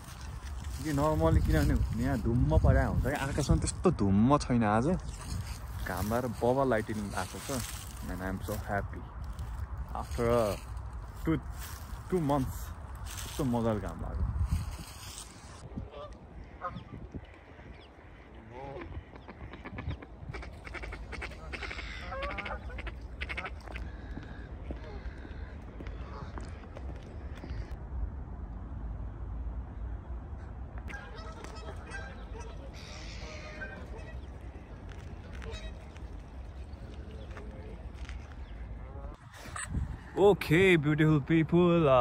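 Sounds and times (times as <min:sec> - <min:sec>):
wind rumble on microphone: 0:00.0 - 0:40.6
geese honking: 0:05.1 - 0:08.7, 0:14.8 - 0:27.7, 0:30.9 - 0:39.6.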